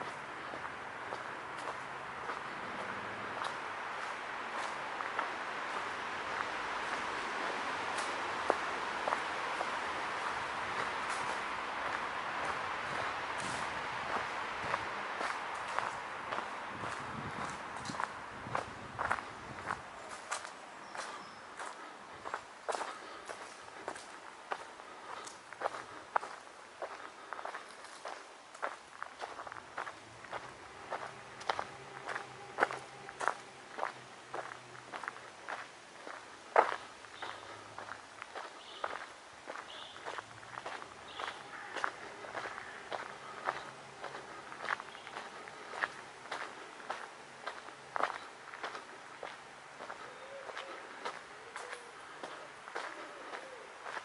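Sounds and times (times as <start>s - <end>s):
footsteps on paved path: 0.0s - 54.0s.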